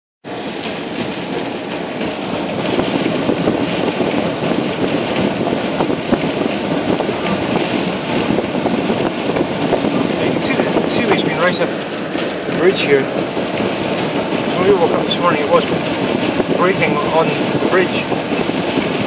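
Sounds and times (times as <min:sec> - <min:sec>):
rain hitting car body and glass: 0:00.3 - 0:19.0
storm wind buffeting a car: 0:00.3 - 0:19.0.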